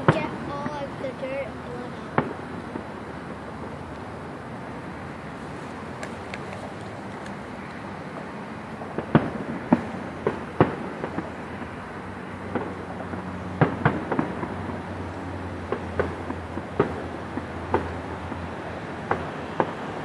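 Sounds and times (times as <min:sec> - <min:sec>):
distant fireworks bangs: 0:00.0 - 0:20.0.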